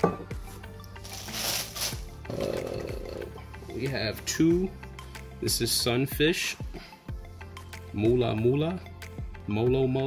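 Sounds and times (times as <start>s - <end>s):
plastic bag crinkling: 1.0s - 2.0s.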